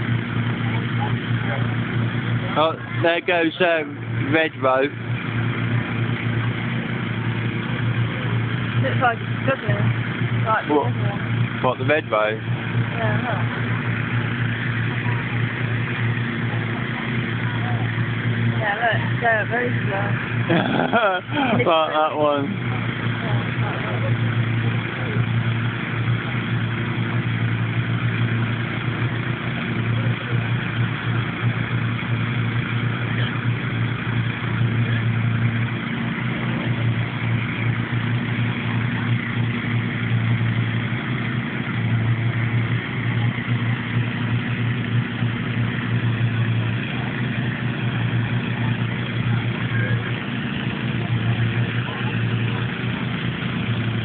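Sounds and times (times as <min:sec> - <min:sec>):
inflator fans blowing air: 0:00.0 - 0:54.0
low engine hum: 0:00.0 - 0:54.0.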